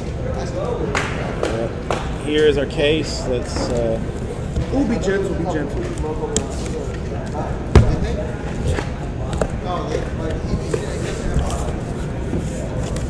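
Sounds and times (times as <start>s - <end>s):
box thump: 7.8s - 8.2s.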